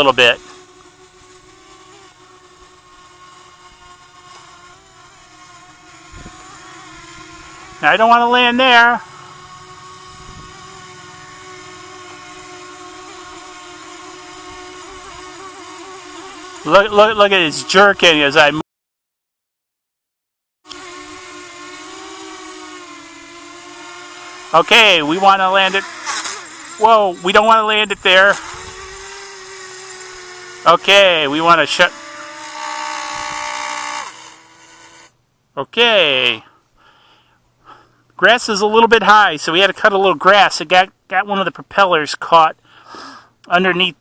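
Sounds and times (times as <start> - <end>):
drone propellers whining: 0.0 - 18.1, 20.7 - 35.0.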